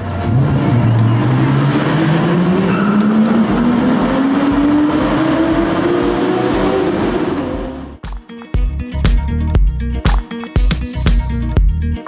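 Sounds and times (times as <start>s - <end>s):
car engine accelerating hard: 0.0s - 8.0s.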